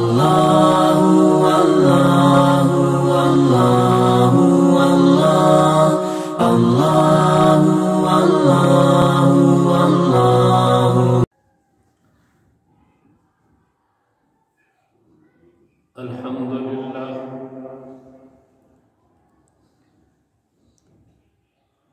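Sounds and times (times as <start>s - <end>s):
a cappella vocal chant: 0.0s - 11.3s.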